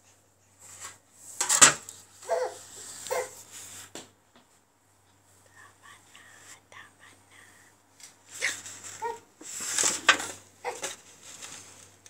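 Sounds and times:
baby vocal sound: 2.2 - 3.4
soft whispering: 5.2 - 8.8.

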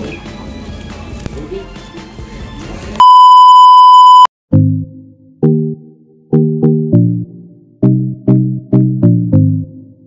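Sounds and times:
electronic test tone beep: 3.0 - 4.3
keyboard chord music: 4.5 - 10.0.

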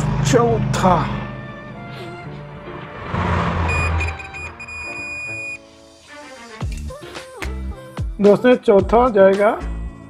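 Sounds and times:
background music: 0.0 - 10.0
multimeter continuity beep: 3.7 - 5.7.

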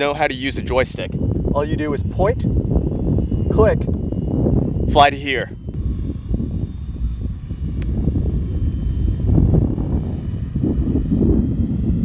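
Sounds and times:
drone propeller whine: 0.0 - 12.0.

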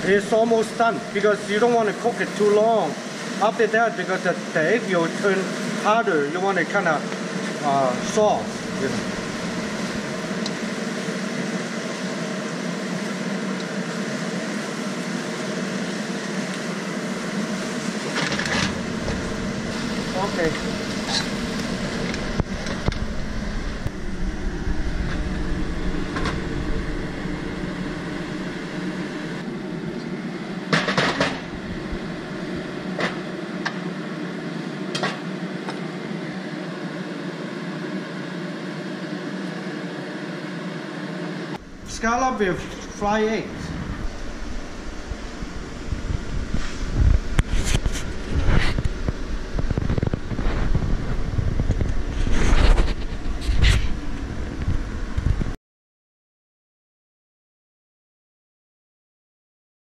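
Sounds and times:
kitchen fan hum: 0.0 - 55.6
spatula scraping a wok: 46.5 - 48.9.

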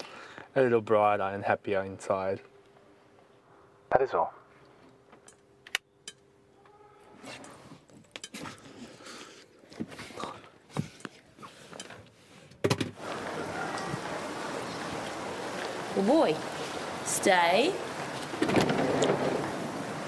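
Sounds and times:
steady rain: 13.0 - 20.0.

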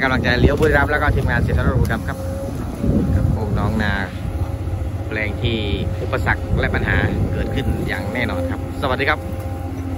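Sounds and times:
excavator diesel engine rumbling: 0.0 - 9.9.

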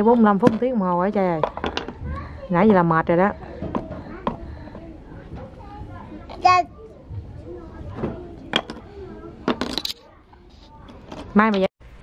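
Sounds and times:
murmur of children's voices: 1.5 - 11.4.

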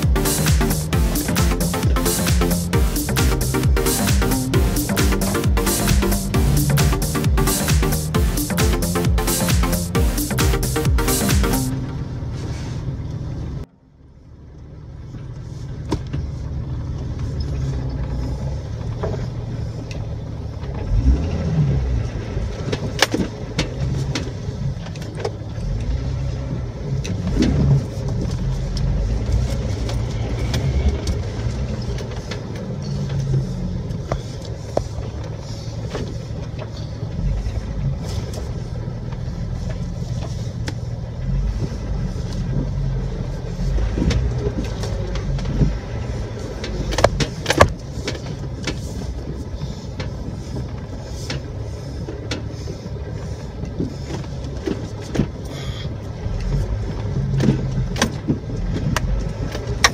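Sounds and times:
engine and drivetrain rumble: 0.0 - 59.9.

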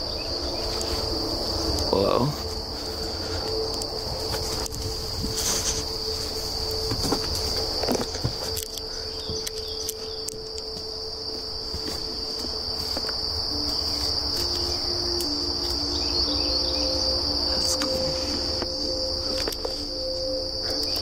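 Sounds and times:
insects trilling: 0.0 - 21.0.

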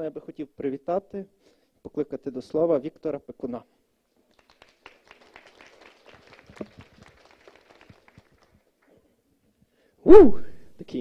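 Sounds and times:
faint audience applause: 4.2 - 9.1.

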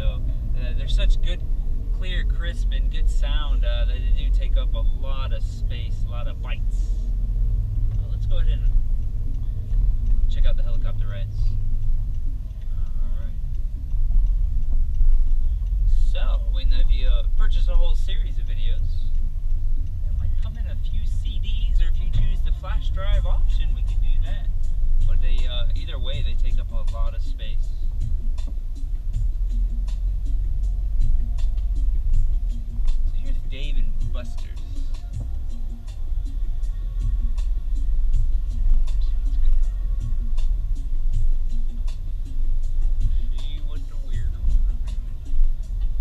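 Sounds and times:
car cabin rumble: 0.0 - 46.0.

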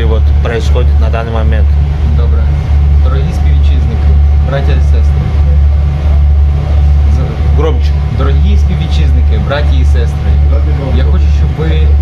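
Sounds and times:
ship engines low drone: 0.0 - 12.0.

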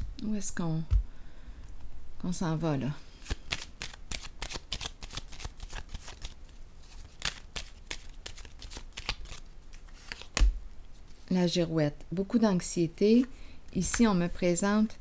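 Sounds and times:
cards being shuffled: 3.2 - 11.3.

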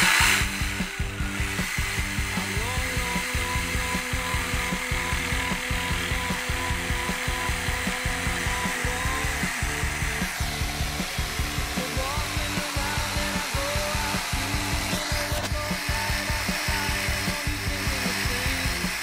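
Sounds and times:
jigsaw cutting wood: 0.0 - 19.0.

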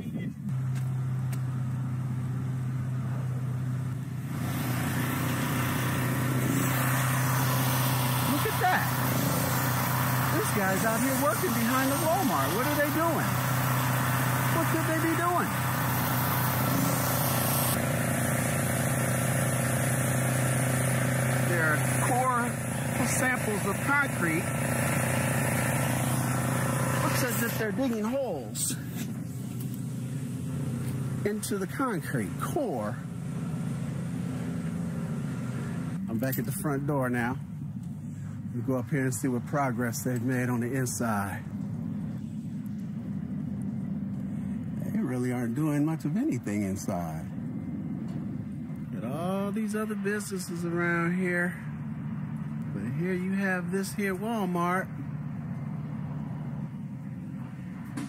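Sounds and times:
air compressor engine humming: 0.0 - 58.0
construction machinery drone: 0.0 - 58.0
loud hiss: 4.4 - 27.9.

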